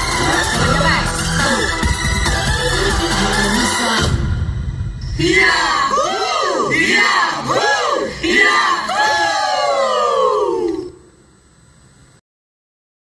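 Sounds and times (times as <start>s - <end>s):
crowd crying out together: 5.2s - 11.0s.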